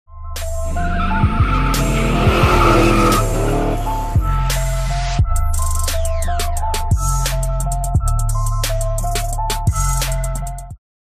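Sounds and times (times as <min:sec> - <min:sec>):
car engine rumble: 0:00.3 - 0:05.8.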